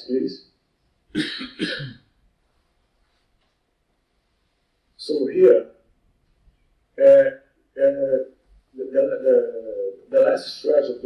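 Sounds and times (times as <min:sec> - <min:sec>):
man coughing: 0:01.2 - 0:02.0.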